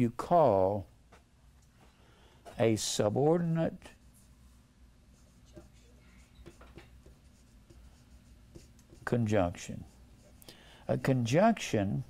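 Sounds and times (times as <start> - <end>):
marker squeaking on whiteboard: 5.1 - 11.2.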